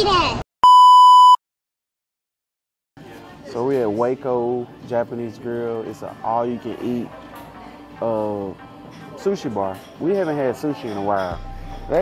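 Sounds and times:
high-pitched electronic beep: 0.6s - 1.4s.

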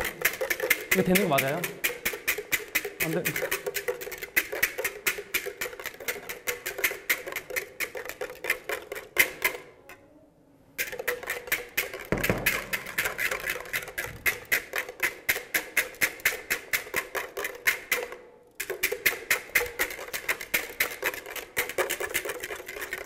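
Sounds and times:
whisk clattering against glass bowl: 0.0s - 9.6s, 10.8s - 23.0s.

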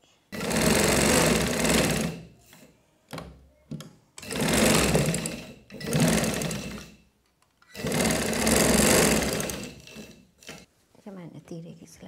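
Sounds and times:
sewing machine stitching: 0.3s - 2.4s, 4.2s - 7.0s, 7.7s - 10.7s.

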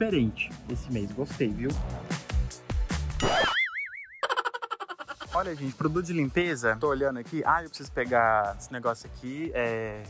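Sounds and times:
background music with a beat: 0.0s - 3.5s
cartoon warbling whistle: 3.2s - 4.5s.

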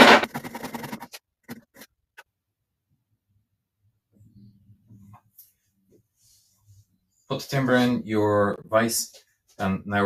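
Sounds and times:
wood blocks scraping on wood: 0.0s - 1.9s.

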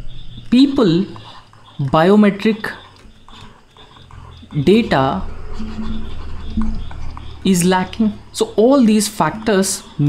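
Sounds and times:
stylus scratching on tablet: 0.5s - 10.0s.

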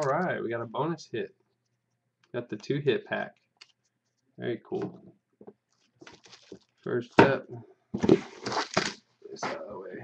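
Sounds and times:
man talking: 0.0s - 1.4s, 2.3s - 3.4s, 4.4s - 5.0s, 6.8s - 7.7s, 9.2s - 10.0s.

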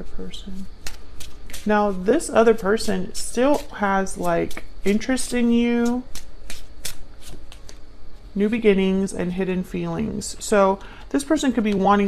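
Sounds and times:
cards being shuffled: 0.8s - 2.0s, 5.8s - 7.8s.

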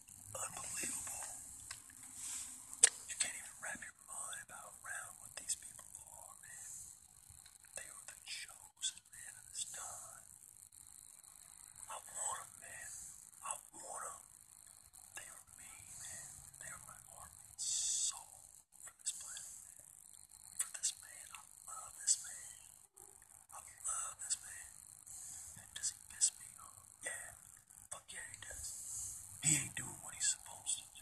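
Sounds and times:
person whispering: 0.3s - 6.8s, 7.8s - 10.2s, 11.9s - 14.2s, 15.1s - 19.6s, 20.6s - 22.7s, 23.6s - 31.0s.

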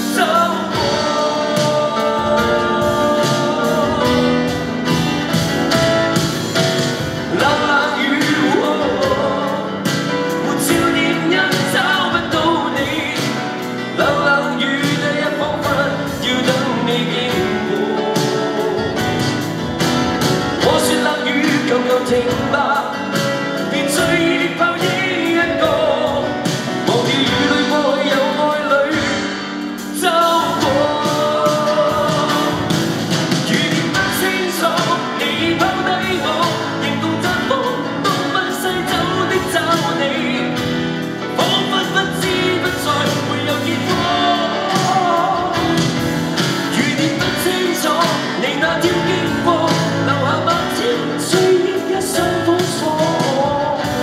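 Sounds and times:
instrumental backing: 0.0s - 54.0s
man singing pop ballad: 0.0s - 54.0s.

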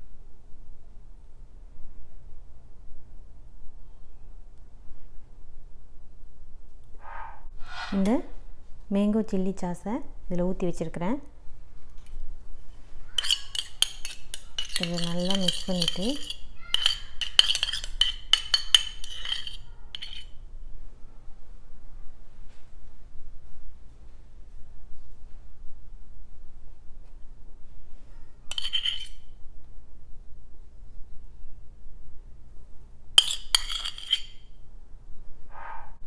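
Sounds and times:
metal spoon clinking on steel bowl: 13.2s - 20.4s, 28.5s - 29.2s, 33.2s - 34.4s.

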